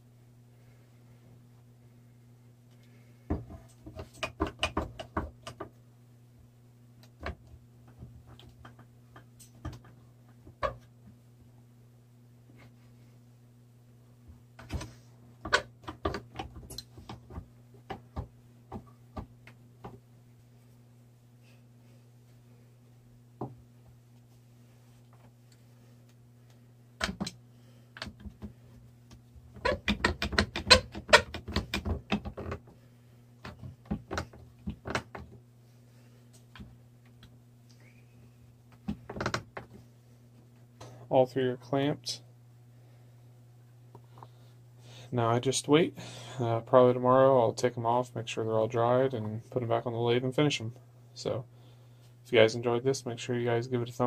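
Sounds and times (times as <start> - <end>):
steady low hum: 0.0 - 54.0
clicks and knocks on a workbench: 3.3 - 5.8, 7.1 - 10.9.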